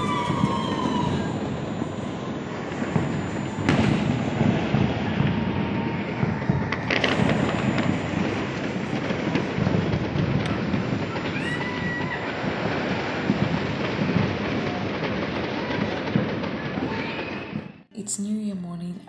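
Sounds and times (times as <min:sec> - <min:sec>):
distant fireworks popping and banging: 0:00.0 - 0:17.9
firework whistle: 0:00.0 - 0:17.9.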